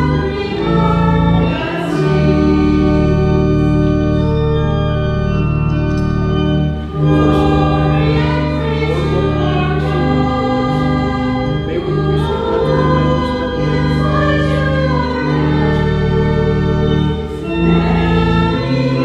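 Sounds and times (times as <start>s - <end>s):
organ chords: 0.0s - 19.0s
voices singing a hymn: 0.0s - 19.0s.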